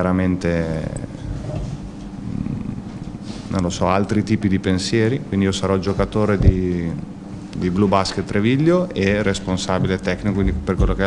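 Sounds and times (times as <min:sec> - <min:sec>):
man murmuring into microphone: 0:00.5 - 0:04.3.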